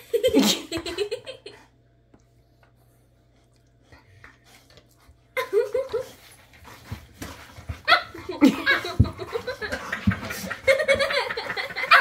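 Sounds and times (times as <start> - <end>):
dogs scuffling: 5.5 - 12.0.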